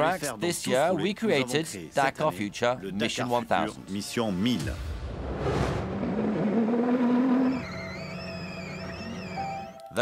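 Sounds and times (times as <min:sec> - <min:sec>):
car engine revving: 0:05.2 - 0:09.4
wavering high tone: 0:07.4 - 0:10.0.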